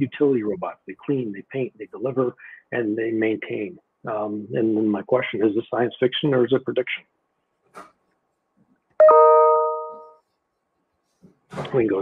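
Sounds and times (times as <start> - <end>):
bright chime ding: 9.0 - 10.2.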